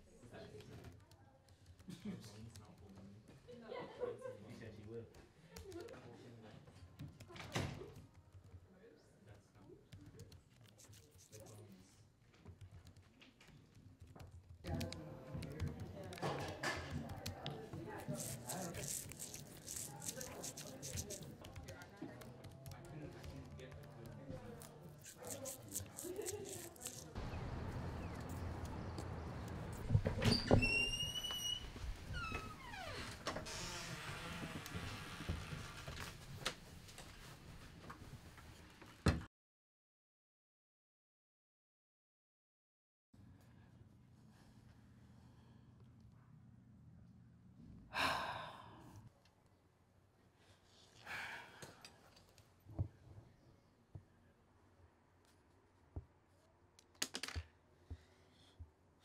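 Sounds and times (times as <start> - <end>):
laptop keyboard typing: 12.5 - 27.1
door creaking on hinges: 29.6 - 36.1.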